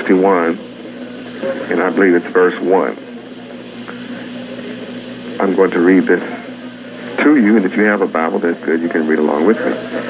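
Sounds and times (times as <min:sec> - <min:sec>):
electrical hum and hiss: 0:00.0 - 0:10.0
person speaking: 0:01.3 - 0:03.2, 0:03.9 - 0:10.0.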